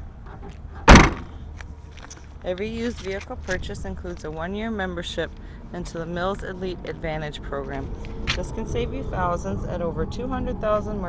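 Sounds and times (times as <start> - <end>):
car trunk lid slamming shut: 0.9 - 1.4.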